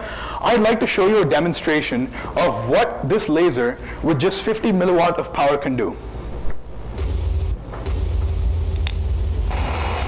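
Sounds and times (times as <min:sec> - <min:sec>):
low steady rumble: 0:06.7 - 0:09.8
brighter hiss: 0:07.0 - 0:10.0
faint hiss: 0:07.0 - 0:10.0.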